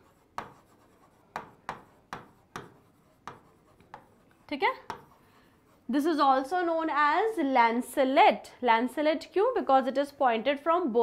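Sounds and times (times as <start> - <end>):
marker strokes on a board: 0.0 - 6.1.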